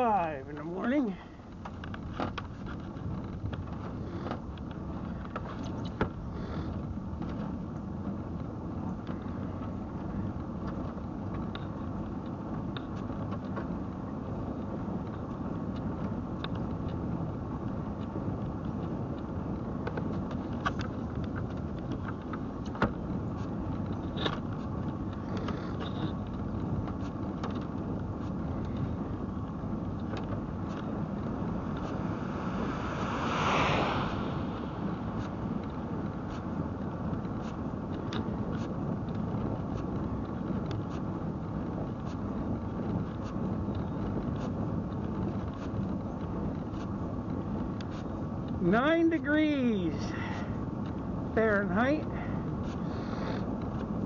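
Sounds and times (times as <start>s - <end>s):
light clicks and rattles: 0.0s - 33.0s, 35.2s - 48.8s
rolling rumble on asphalt: 0.0s - 54.0s
car passing whoosh: 29.9s - 37.6s.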